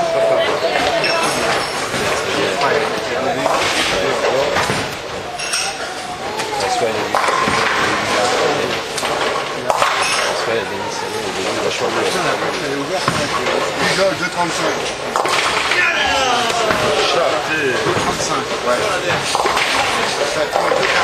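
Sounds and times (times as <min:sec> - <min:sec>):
chatter of many voices: 0:00.0 - 0:21.0
bowling pins clattering: 0:00.5 - 0:21.0
clinks: 0:05.4 - 0:05.8.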